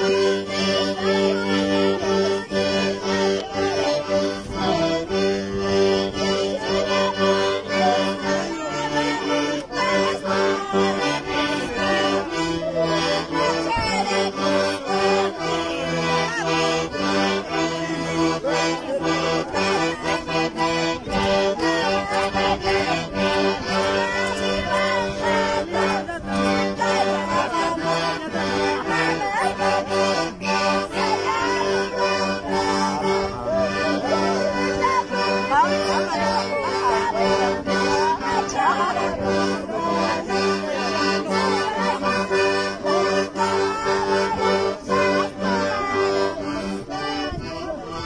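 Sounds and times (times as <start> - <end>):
accordion playing dance tune: 0.0 - 48.0.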